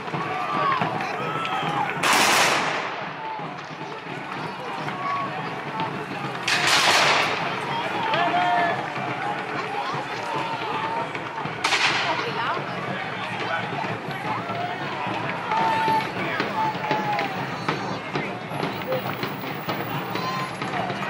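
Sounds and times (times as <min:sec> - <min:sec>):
people shouting: 0:00.0 - 0:21.0
musket bangs: 0:02.0 - 0:03.1, 0:06.5 - 0:07.5, 0:11.6 - 0:12.2.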